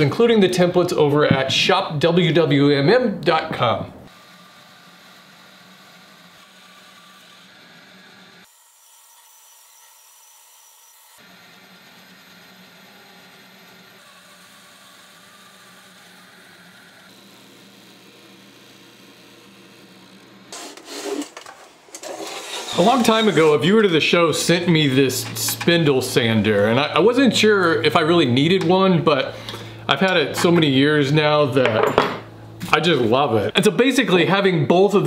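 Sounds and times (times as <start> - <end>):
band saw cutting wood: 4.1 - 35.0.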